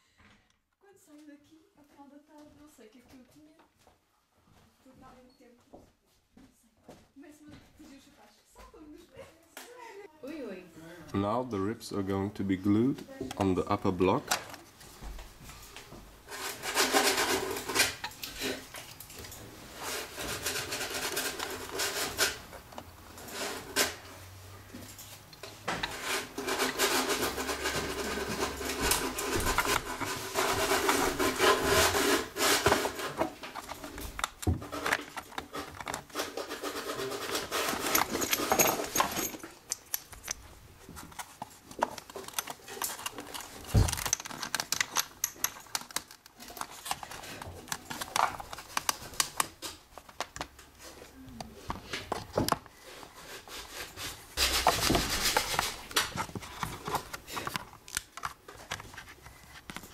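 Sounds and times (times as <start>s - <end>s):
wood rubbing and scraping: 13.1s - 59.9s.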